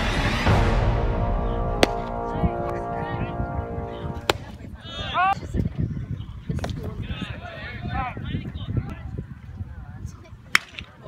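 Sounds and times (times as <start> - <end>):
sharp crack of baseball striking: 1.8 - 2.8, 4.2 - 4.5.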